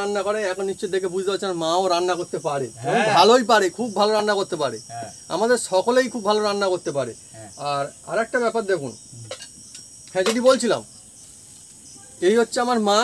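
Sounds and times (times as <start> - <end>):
man talking: 0.0 - 9.4, 12.2 - 13.0
crickets chirping: 0.0 - 13.0.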